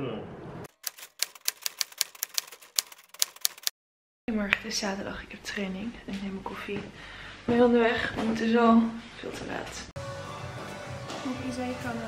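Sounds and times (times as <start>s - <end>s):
typewriter key clicks: 0.8s - 3.7s.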